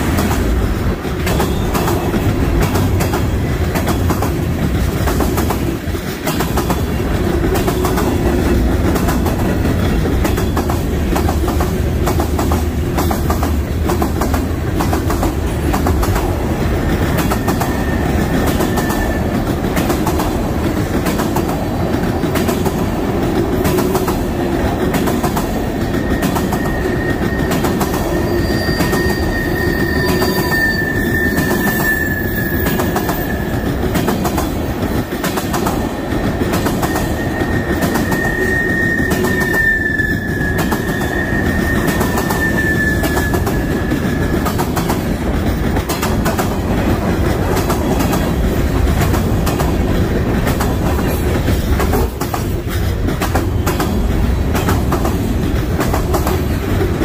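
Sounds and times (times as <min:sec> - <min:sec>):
rail joints clicking: 0:00.0 - 0:57.0
train wheels rumbling on rail: 0:00.0 - 0:57.0
metallic wheel squeal: 0:25.9 - 0:33.7, 0:36.8 - 0:44.4.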